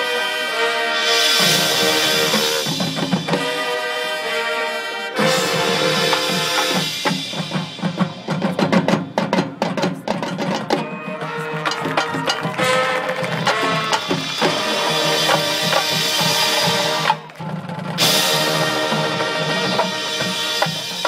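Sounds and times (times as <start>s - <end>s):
marching band playing: 0.0s - 21.0s.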